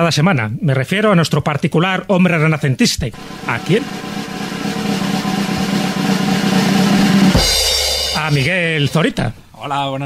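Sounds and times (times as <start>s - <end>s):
snare drum roll: 3.2s - 9.3s.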